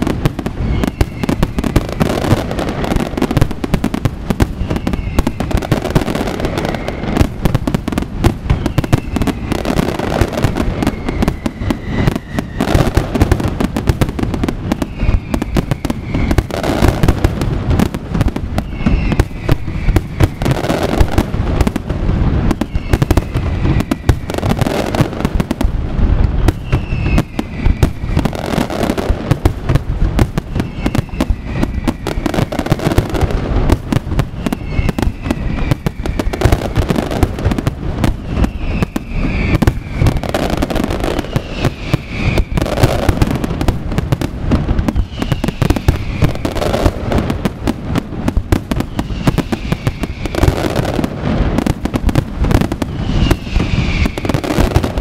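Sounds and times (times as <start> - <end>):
fireworks bangs and crackle: 0.0 - 55.0
fireworks falling whistles: 0.0 - 55.0.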